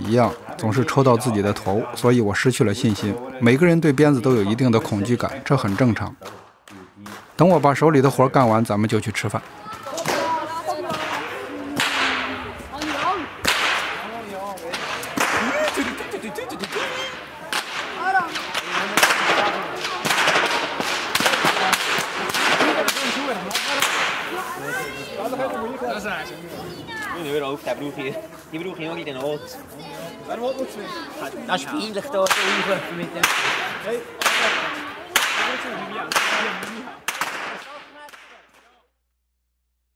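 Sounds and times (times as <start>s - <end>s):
voices talking: 0.0s - 38.9s
whips cracking: 10.9s - 14.1s, 14.7s - 16.0s, 16.6s - 24.3s, 32.2s - 38.4s.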